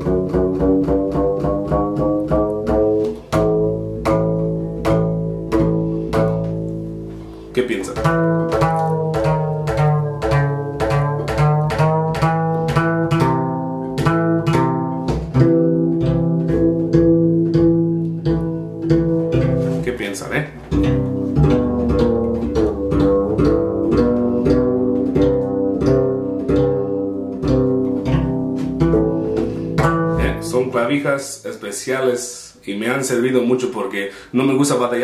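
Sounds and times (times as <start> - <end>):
plucked bass guitar notes: 0.0 - 31.6.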